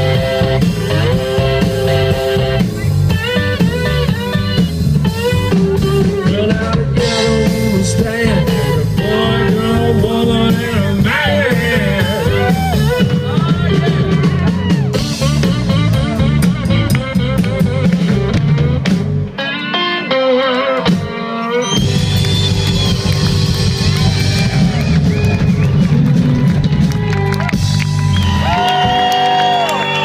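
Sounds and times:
electric guitar bent notes: 0.0 - 29.0
blues-rock band playing: 0.0 - 30.0.

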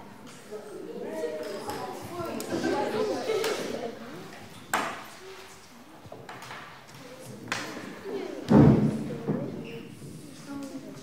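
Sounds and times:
faint indistinct voices: 0.0 - 11.0.

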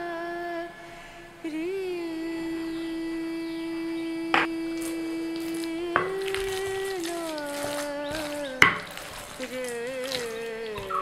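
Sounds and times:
hummed vocal note: 0.0 - 11.0.

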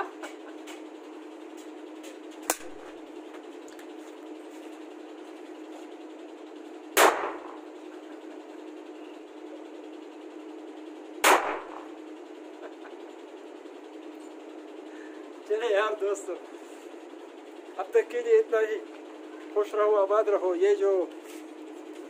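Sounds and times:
rifle shots with echo: 7.0 - 7.6, 11.2 - 11.8.

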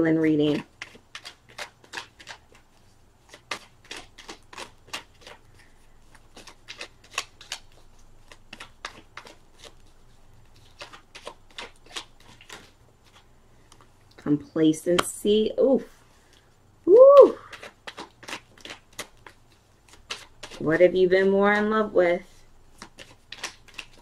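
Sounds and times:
cards being shuffled: 0.3 - 14.0, 17.2 - 21.7, 22.3 - 24.0.

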